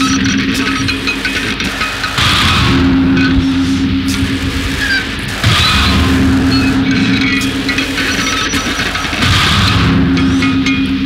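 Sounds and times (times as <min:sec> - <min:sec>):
distorted noise wall: 0:00.0 - 0:11.0
high squealing tones: 0:00.0 - 0:11.0
low droning tone: 0:00.0 - 0:11.0.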